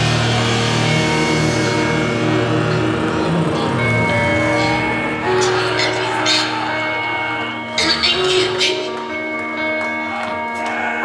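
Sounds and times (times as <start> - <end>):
distorted guitar chords: 0.0 - 11.0.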